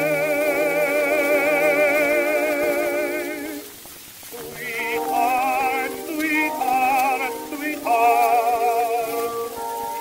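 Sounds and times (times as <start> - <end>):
record surface hiss: 0.0 - 10.0
tenor singing ballad with orchestra: 0.0 - 10.0.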